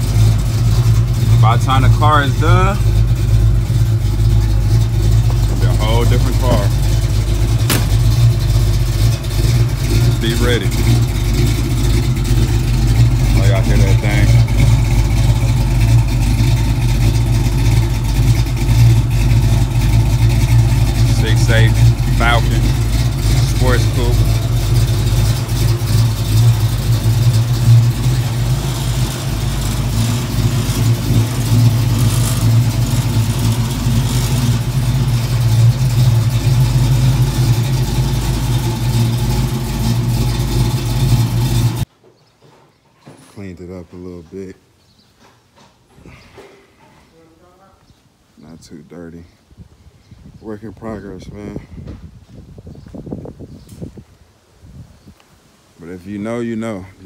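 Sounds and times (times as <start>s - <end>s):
car engine idling: 0.0s - 41.9s
footsteps: 7.6s - 8.1s.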